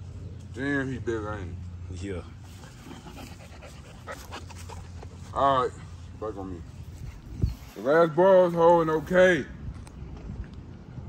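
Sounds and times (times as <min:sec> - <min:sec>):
puppies panting softly: 0:02.4 - 0:07.6.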